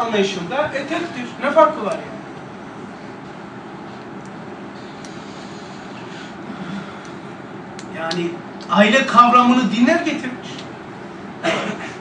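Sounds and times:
lecture room background noise: 0:00.0 - 0:12.0.

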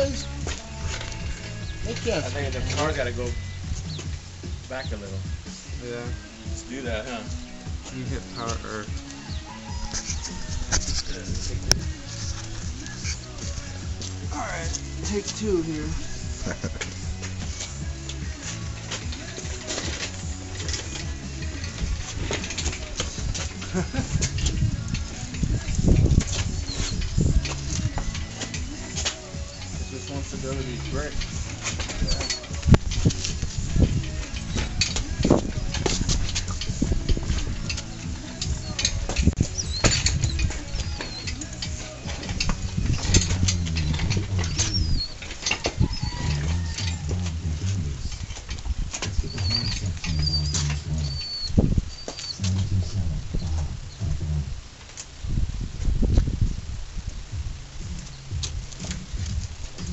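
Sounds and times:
bird chirps: 0:01.2 - 0:02.4, 0:03.2 - 0:05.3, 0:06.1 - 0:11.2, 0:26.2 - 0:31.2, 0:37.6 - 0:42.0, 0:42.8 - 0:46.7, 0:49.1 - 0:54.1
low rumble on microphone: 0:07.3 - 0:59.9
metal clinks and knocks: 0:08.3 - 0:51.4.

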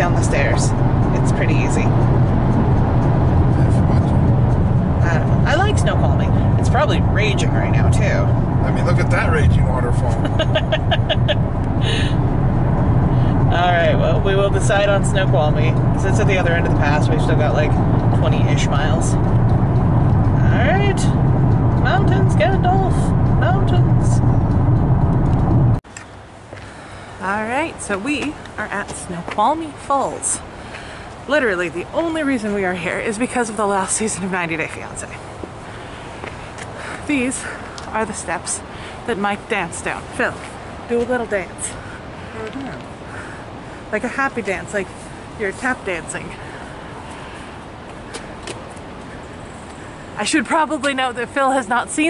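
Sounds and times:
car road and engine rumble: 0:00.0 - 0:52.0
rushing outdoor background noise: 0:00.0 - 0:52.0.

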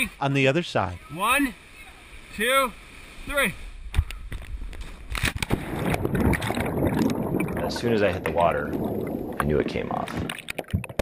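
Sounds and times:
underwater churning: 0:05.4 - 0:11.0.

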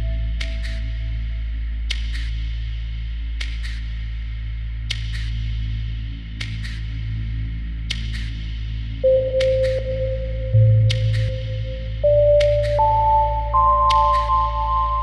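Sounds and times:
low electronic drone: 0:00.0 - 0:01.9, 0:09.0 - 0:15.0.

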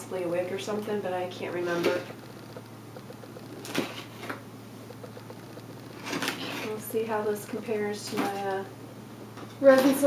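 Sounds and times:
low hum: 0:00.0 - 0:08.1.

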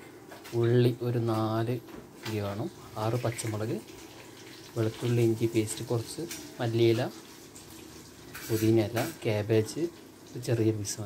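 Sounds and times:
person speaking: 0:00.5 - 0:03.9, 0:04.8 - 0:07.2, 0:08.4 - 0:11.0.

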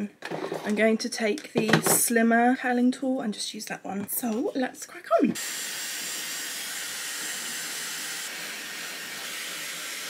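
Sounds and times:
hair dryer air rush: 0:05.4 - 0:10.0.

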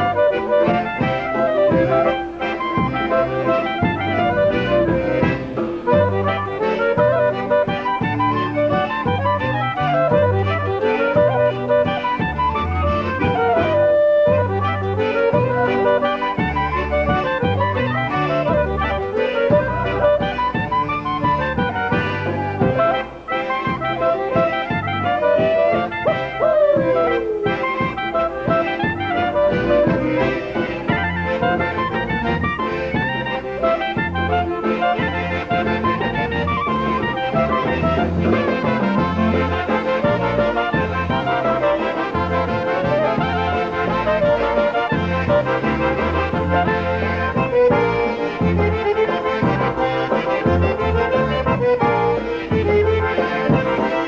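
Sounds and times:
accordion: 0:00.0 - 0:54.0
bass and drum beat: 0:00.0 - 0:54.0
trumpets playing melody: 0:00.0 - 0:54.0.

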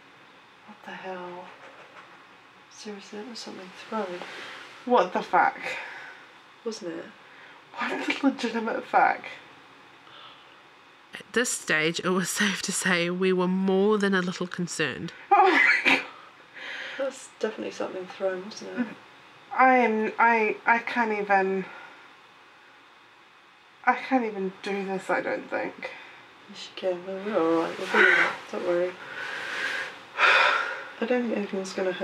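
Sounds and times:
soft breath: 0:04.2 - 0:04.9, 0:10.0 - 0:10.7, 0:29.0 - 0:31.0.

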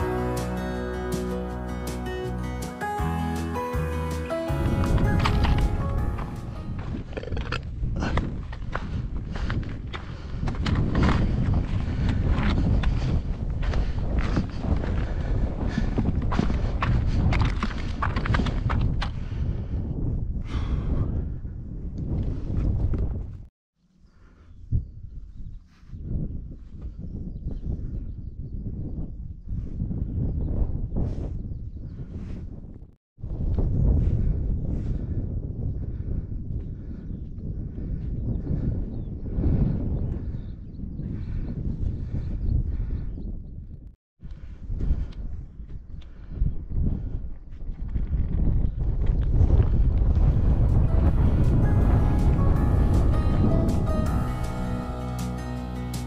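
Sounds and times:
acoustic guitar music: 0:00.0 - 0:06.9, 0:50.8 - 0:56.0
footsteps crunching on gravel: 0:04.5 - 0:10.0
wind buffeting microphone: 0:04.5 - 0:23.5, 0:24.1 - 0:55.8.

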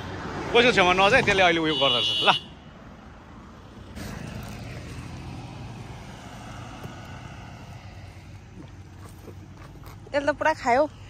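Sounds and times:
vehicle driving past: 0:03.3 - 0:09.6.

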